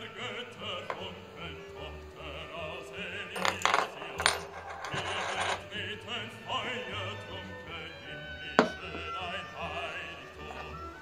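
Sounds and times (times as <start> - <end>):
coins clinking on wooden board: 3.4 - 5.6.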